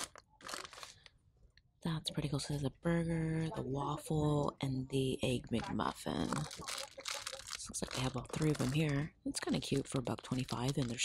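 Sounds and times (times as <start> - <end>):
plastic packets crinkling: 0.0 - 1.2, 6.2 - 11.0.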